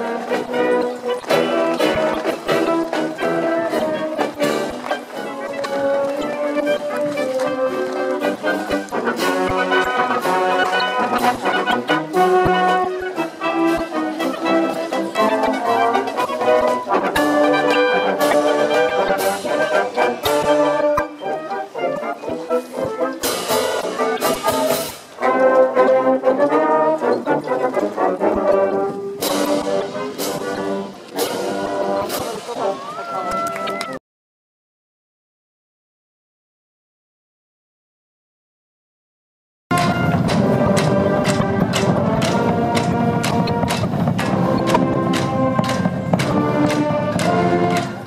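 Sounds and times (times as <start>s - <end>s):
marching band playing: 0.0s - 33.7s, 39.7s - 48.0s.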